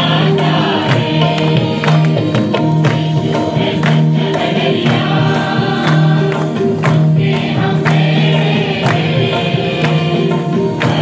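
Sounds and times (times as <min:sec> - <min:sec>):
instrumental backing with beat: 0:00.0 - 0:11.0
voices singing worship song: 0:00.0 - 0:11.0.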